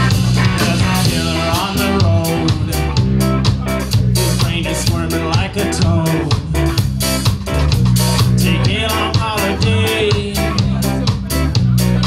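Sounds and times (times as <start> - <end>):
drum kit beat: 0.0 - 12.0
electric guitar: 0.0 - 12.0
held bass notes: 0.0 - 12.0.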